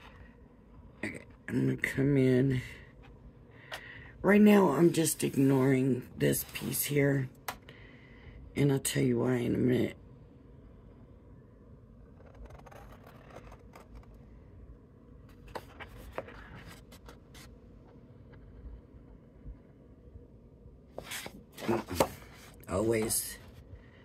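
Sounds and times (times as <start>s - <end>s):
card rustling and crackling: 12.2s - 14.2s, 15.3s - 17.5s, 21.0s - 23.6s.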